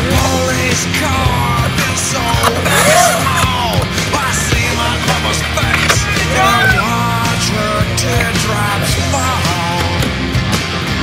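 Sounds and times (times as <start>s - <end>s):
loud rock song with singer: 0.0s - 11.0s
skateboard wheels rolling on concrete: 0.0s - 11.0s
skateboard clacks: 1.0s - 6.7s.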